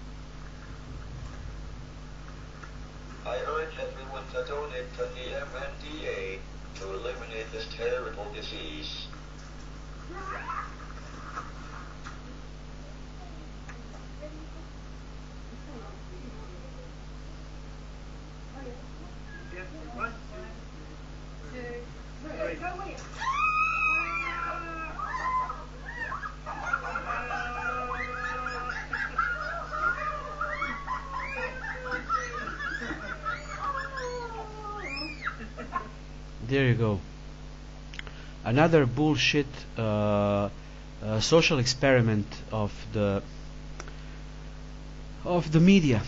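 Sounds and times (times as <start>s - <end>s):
steady electrical hum: 0.0s - 46.0s
people shrieking and laughing: 23.1s - 36.0s.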